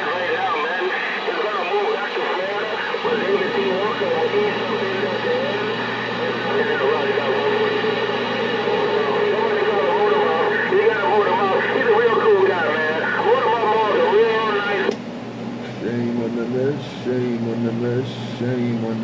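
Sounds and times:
garbled voices over radio speaker: 0.0s - 14.9s
steady radio hum: 0.0s - 19.0s.

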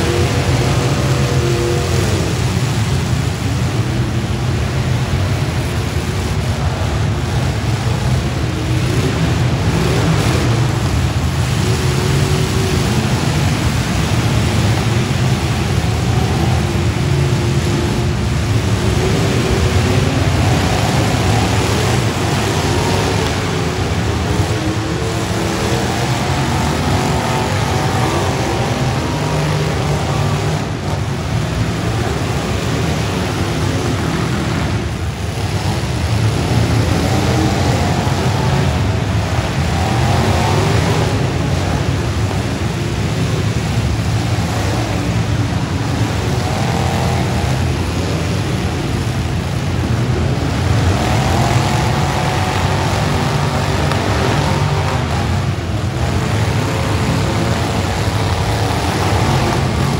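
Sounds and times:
engines revving: 0.0s - 59.9s
steady low drone: 0.0s - 59.9s.

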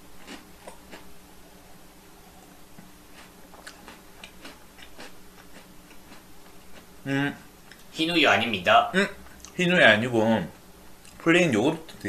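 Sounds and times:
person chewing biscuit: 0.0s - 7.9s.

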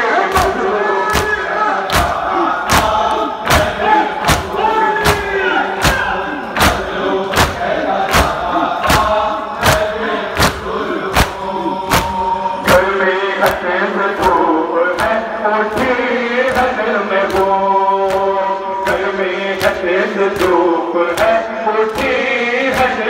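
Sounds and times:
crowd slapping chests in unison: 0.0s - 23.0s
men chanting a lament: 0.0s - 23.0s.

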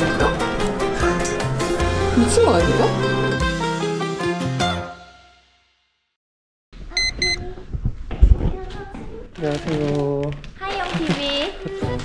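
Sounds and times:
short high electronic beeps: 7.0s - 7.4s
clothes and objects being handled: 7.7s - 11.6s.

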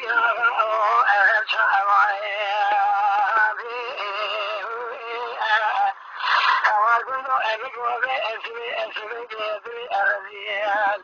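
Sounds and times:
unaccompanied folk singing: 0.0s - 11.0s.

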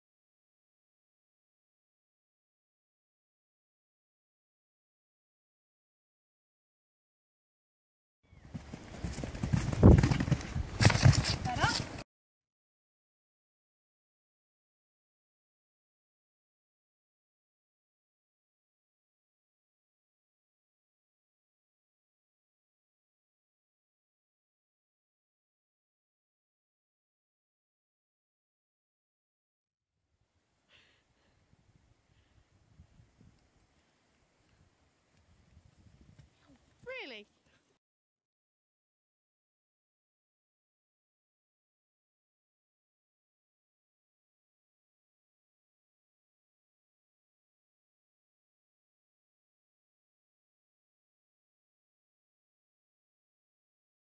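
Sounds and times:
horses hoofbeats on turf: 8.4s - 12.0s.

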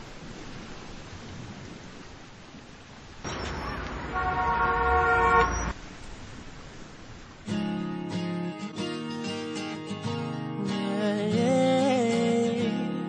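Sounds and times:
car horn honking: 3.6s - 5.7s.

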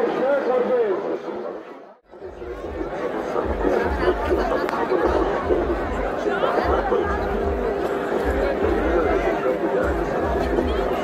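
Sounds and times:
large crowd chattering: 0.0s - 11.0s
music: 2.0s - 11.0s.

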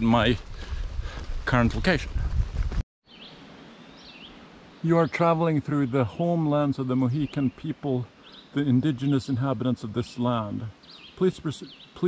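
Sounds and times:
low rumbling wind: 0.0s - 2.8s
microphone handling noise: 0.0s - 2.8s
bird chirps: 10.7s - 12.0s.

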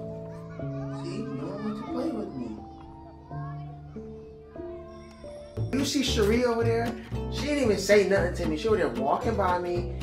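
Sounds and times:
children playing voices: 0.0s - 8.2s
soft background music chords: 0.0s - 10.0s.

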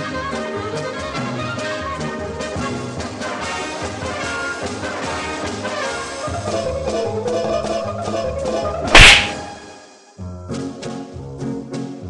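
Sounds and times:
loud sharp percussive crack: 8.9s - 9.5s.

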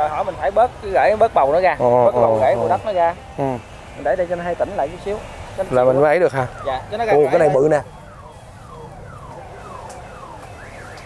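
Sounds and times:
electronic alarm siren whooping: 1.9s - 11.0s.

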